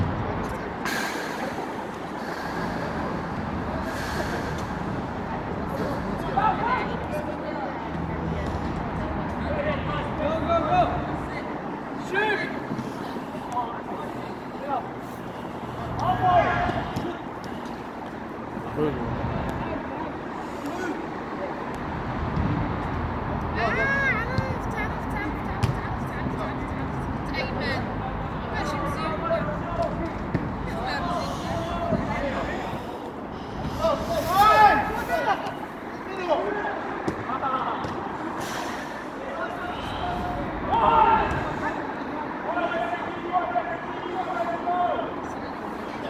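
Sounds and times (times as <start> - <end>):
distant voices of players: 0.0 - 46.0
traffic rumble: 0.0 - 46.0.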